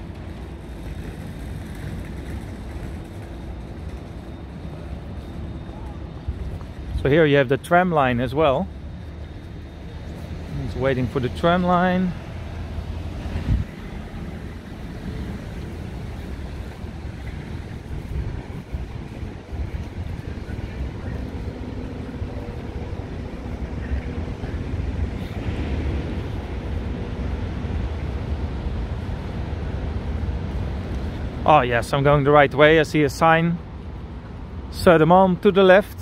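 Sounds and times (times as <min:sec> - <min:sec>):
wind rumbling on microphone: 0:00.0 - 0:32.6
traffic noise: 0:00.0 - 0:36.0.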